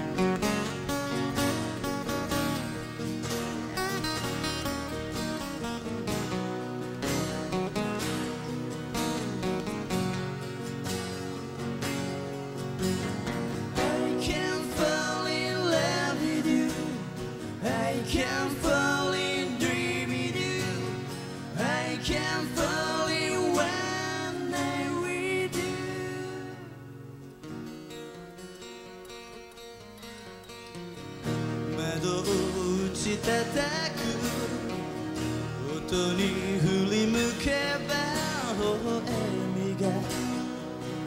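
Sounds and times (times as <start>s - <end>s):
acoustic guitars strummed: 0.0s - 41.0s
person singing lead melody: 13.4s - 27.1s, 31.5s - 41.0s.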